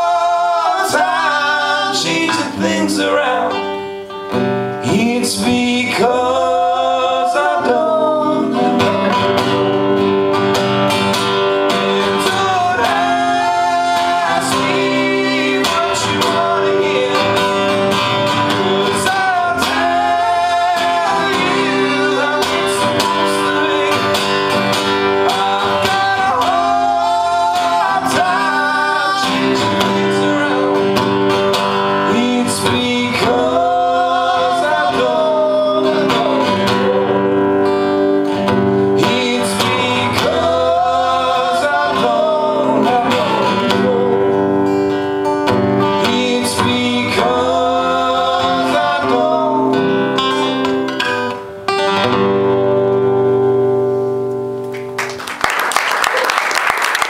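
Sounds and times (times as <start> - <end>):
person singing: 0.0 - 3.9, 4.8 - 10.0, 11.6 - 38.1, 38.7 - 45.0, 45.7 - 50.8
acoustic guitars strummed: 0.0 - 55.2.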